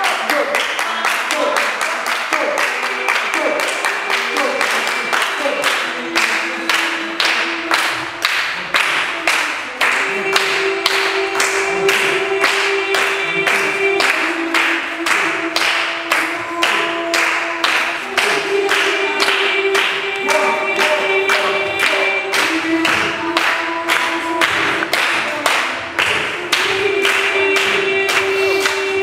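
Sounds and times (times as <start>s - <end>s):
group hand clapping: 0.0s - 29.0s
group singing a cappella: 0.0s - 29.0s.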